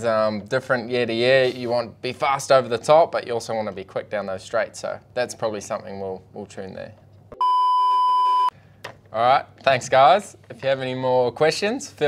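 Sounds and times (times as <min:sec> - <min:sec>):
electronic bleep: 0:07.4 - 0:08.5.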